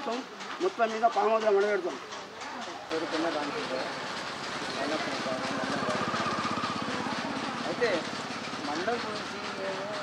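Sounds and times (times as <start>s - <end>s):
small engine running: 2.2s - 10.0s.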